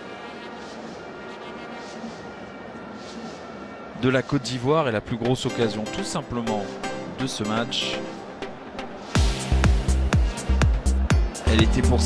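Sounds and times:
stadium crowd ambience: 0:00.0 - 0:12.0.

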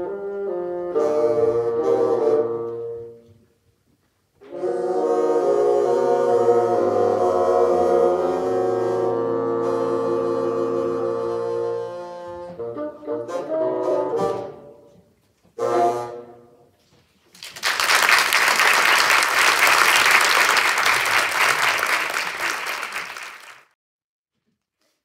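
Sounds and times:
bassoon ensemble playing: 0:00.0 - 0:03.4, 0:04.4 - 0:15.0, 0:15.6 - 0:16.7.

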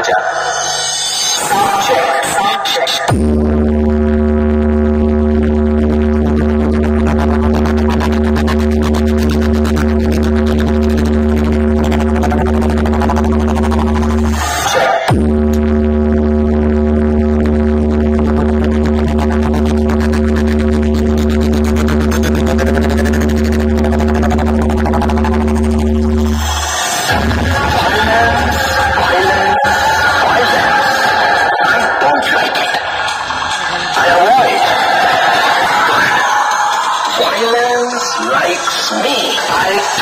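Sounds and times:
deep bass drone from speakers: 0:00.0 - 0:40.0.

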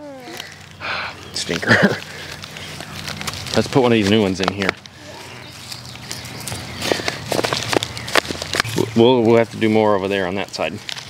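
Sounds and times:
rustles scrapes and taps of potting: 0:01.4 - 0:11.0.

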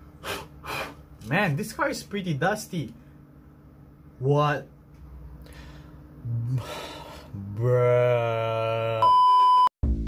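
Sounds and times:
man groaning: 0:06.2 - 0:09.1
censor bleep tone: 0:09.0 - 0:09.7.

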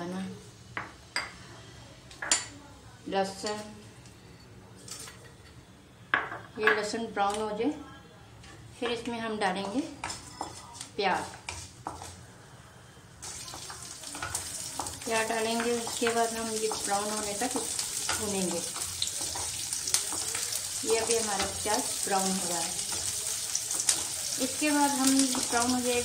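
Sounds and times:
onion sizzling in hot oil: 0:13.2 - 0:26.0.

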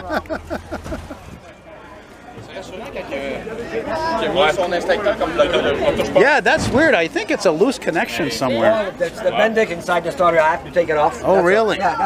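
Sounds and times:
man laughing: 0:00.0 - 0:01.3.

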